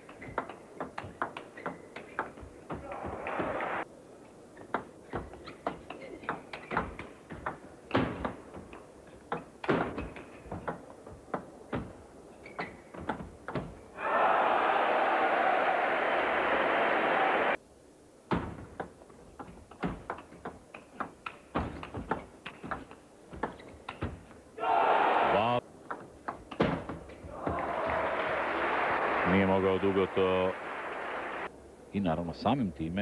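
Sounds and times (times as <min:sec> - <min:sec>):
crowd noise: 0:14.0 - 0:17.6, 0:27.3 - 0:31.5.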